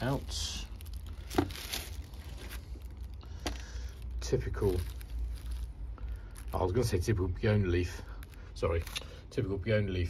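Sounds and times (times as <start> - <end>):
plastic bag rustling: 0.0 - 9.2
low steady rumble: 0.0 - 10.0.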